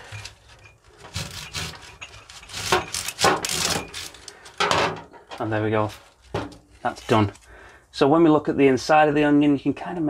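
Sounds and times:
knife sawing through onion: 1.0s - 4.2s.

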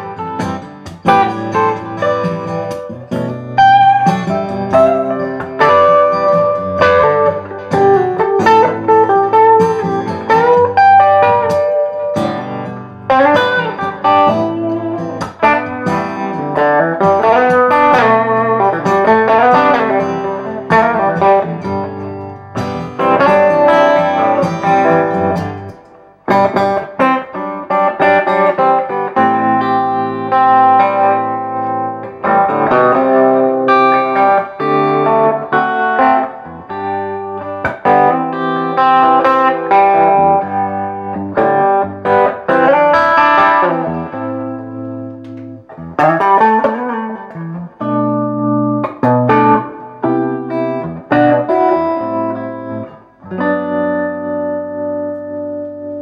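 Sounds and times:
electric guitar playing: 0.0s - 56.0s.

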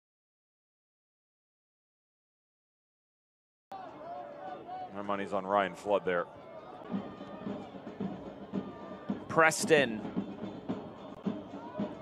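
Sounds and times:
music with steady drumbeat: 6.8s - 12.0s.

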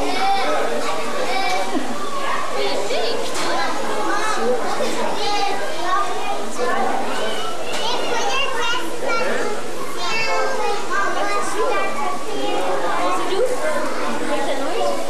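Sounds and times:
children chattering and shouting: 0.0s - 15.0s.

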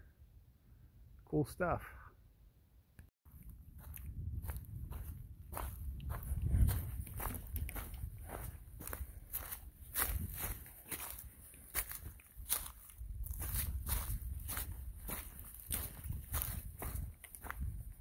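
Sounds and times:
footsteps crunching dry leaves: 3.7s - 18.0s.

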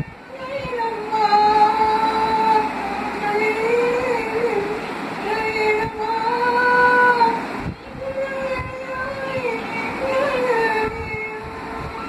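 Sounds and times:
woman singing without words: 0.0s - 12.0s.

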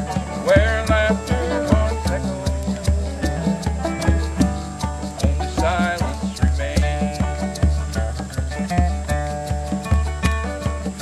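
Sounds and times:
wavering melody line: 0.0s - 6.4s
plucked strings: 0.0s - 11.0s
steady drum beat: 0.0s - 11.0s.

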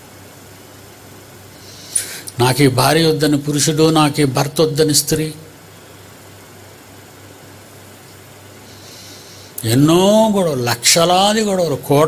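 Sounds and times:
low hiss of room noise: 0.0s - 12.0s
man's quick in-breath: 1.6s - 2.4s, 8.6s - 9.6s.

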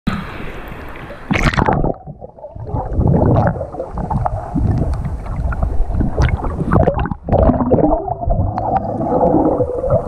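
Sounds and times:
muffled underwater rumbling and gurgling: 0.2s - 10.0s.

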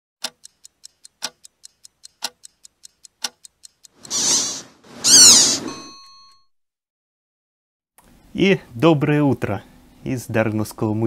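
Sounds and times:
clock ticking: 0.2s - 4.2s
bell-like ding: 5.6s - 6.5s.

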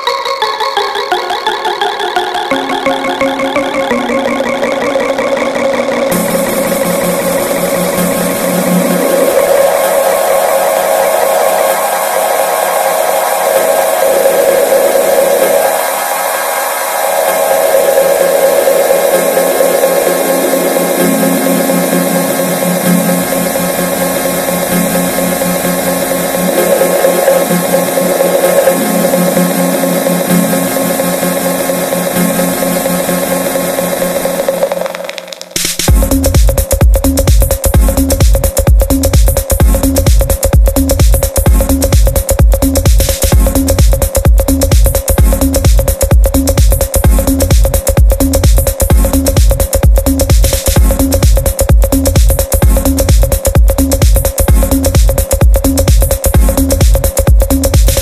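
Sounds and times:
buzzy synth tones: 0.0s - 58.0s.

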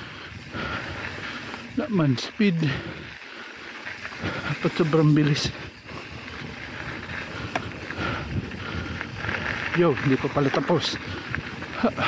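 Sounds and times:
bike rattling: 0.0s - 12.0s
bike tyres rumbling on gravel: 0.0s - 12.0s.

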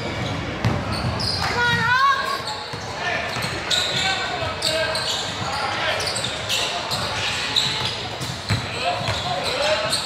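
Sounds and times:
sneaker squeaks: 0.0s - 10.0s
voices of players and spectators: 0.0s - 10.0s
basketball bouncing on hardwood: 8.2s - 9.2s.

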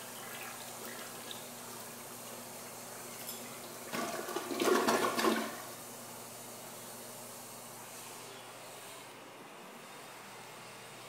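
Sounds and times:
toilet flush click: 3.2s - 5.7s
water rushing down toilet drain: 3.7s - 5.8s.

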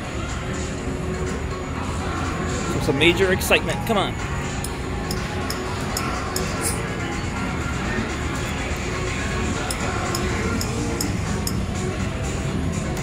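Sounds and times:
slot machine electronic music: 0.0s - 13.0s.

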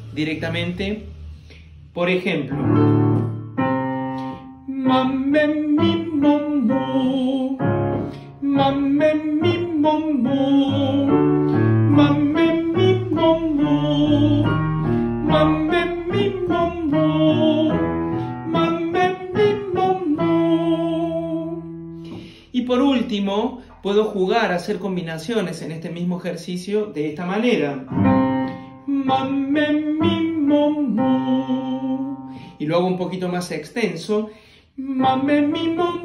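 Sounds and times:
digital piano chords: 0.0s - 34.1s, 34.8s - 36.0s
man singing vocal exercise: 4.6s - 27.8s, 28.4s - 36.0s.

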